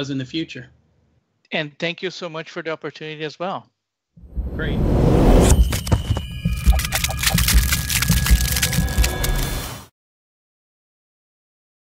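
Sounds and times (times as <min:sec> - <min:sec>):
crackling clicks: 0:05.7 - 0:09.7.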